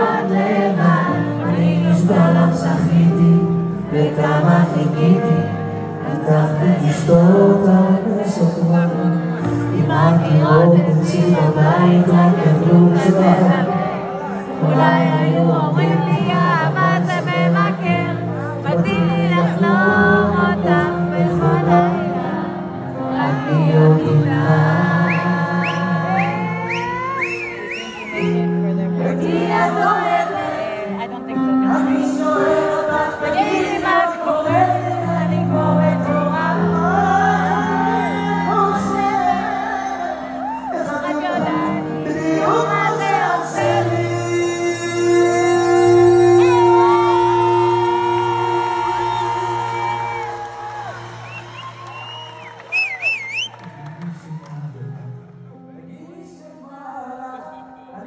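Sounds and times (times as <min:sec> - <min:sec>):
live band music: 0:20.4 - 0:53.7
live band playing: 0:24.5 - 0:32.8.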